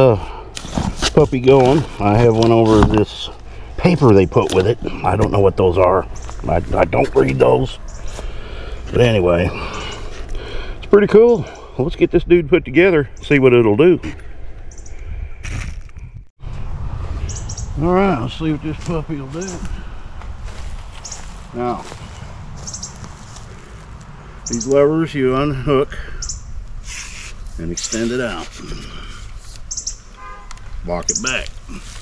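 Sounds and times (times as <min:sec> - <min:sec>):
low steady outdoor hum: 0:00.0 - 0:32.0
bird chirping: 0:06.0 - 0:06.6, 0:07.2 - 0:10.2, 0:14.6 - 0:15.0, 0:17.2 - 0:17.8, 0:21.0 - 0:21.4, 0:22.0 - 0:23.1, 0:24.3 - 0:24.9, 0:26.0 - 0:28.3, 0:29.6 - 0:30.3, 0:30.9 - 0:31.5
wind rumble on microphone: 0:14.8 - 0:24.5.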